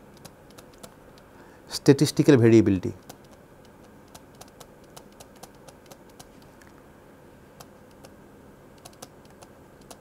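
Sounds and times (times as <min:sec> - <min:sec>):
stylus ticking on pen tablet: 0:00.1 - 0:01.3, 0:03.0 - 0:06.4, 0:08.8 - 0:10.0.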